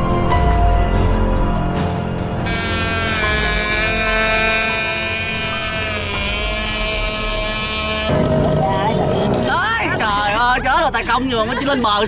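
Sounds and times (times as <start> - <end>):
model boat motor whining: 2.4 - 9.6
broad background noise: 6.6 - 12.0.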